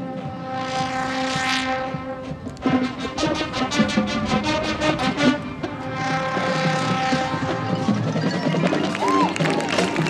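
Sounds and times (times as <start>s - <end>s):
marching band sustained chord: 0.0s - 10.0s.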